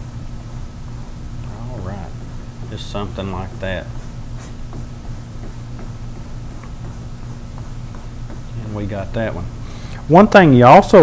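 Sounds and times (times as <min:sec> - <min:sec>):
brush scratching on canvas: 0:01.0 - 0:09.4.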